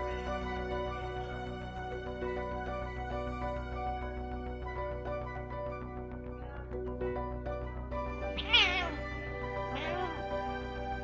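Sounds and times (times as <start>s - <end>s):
background music: 0.0s - 11.0s
cat meowing: 8.3s - 10.3s.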